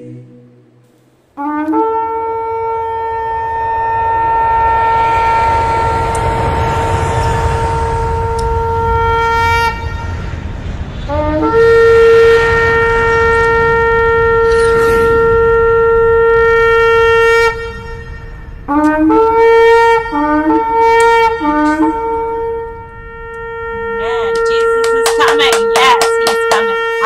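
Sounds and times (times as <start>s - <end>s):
shofar long blasts: 0.0s - 27.0s.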